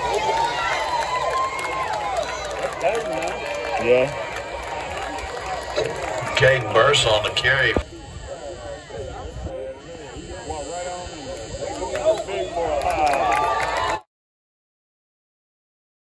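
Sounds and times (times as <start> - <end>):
spectators chattering and calling: 0.0 - 14.1.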